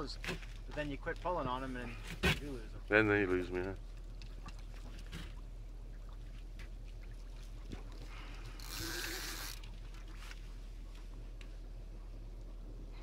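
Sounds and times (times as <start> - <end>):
water lapping against boat: 0.0 - 13.0.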